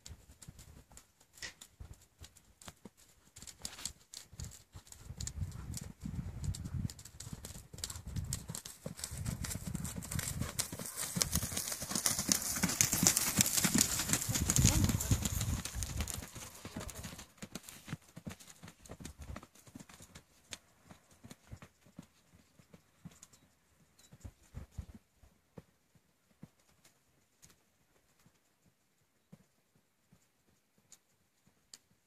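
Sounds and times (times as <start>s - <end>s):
horse hooves on soft dirt: 0.0s - 32.0s.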